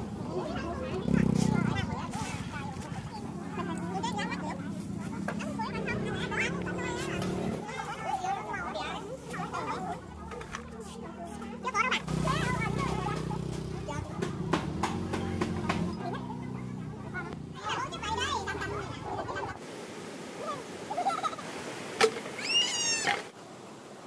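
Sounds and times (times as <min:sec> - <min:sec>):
people talking: 0:00.0 - 0:19.6, 0:20.4 - 0:21.4.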